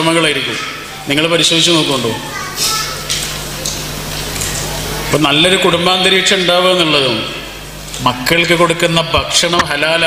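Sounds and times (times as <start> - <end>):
steady low hum: 0.0 - 10.0
children's voices: 0.5 - 1.0, 2.0 - 3.8.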